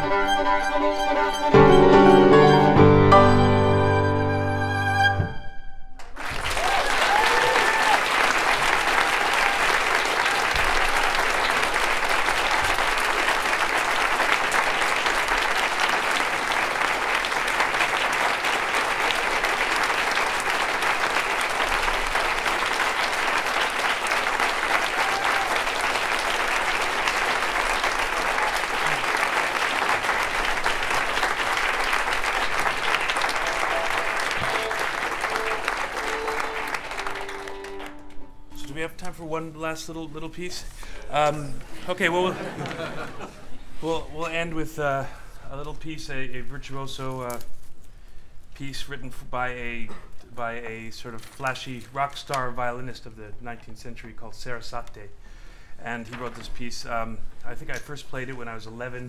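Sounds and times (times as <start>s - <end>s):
audience applauding: 6.0s - 38.3s.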